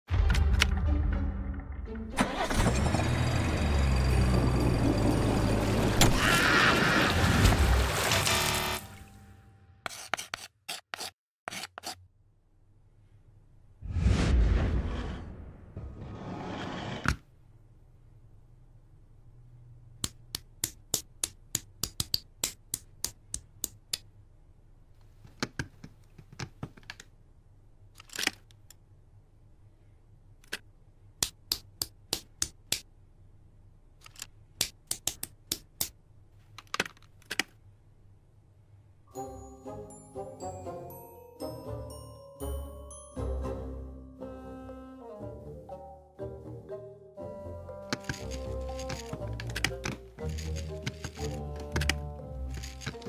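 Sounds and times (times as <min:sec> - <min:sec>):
plastic bricks clicking together: 0:34.0 - 0:35.9, 0:36.6 - 0:37.6, 0:47.9 - 0:53.0
quiet handling of plastic bricks: 0:47.8 - 0:53.0.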